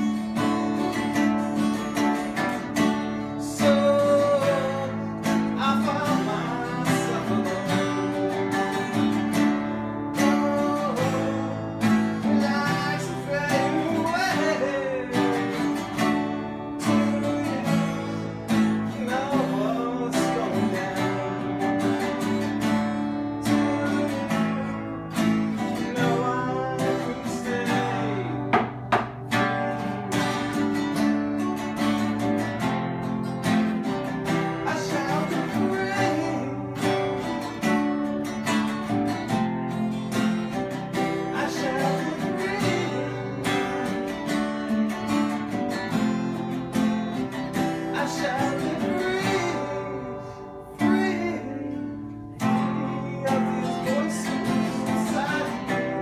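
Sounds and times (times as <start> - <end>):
acoustic guitars playing: 0.0 - 56.0.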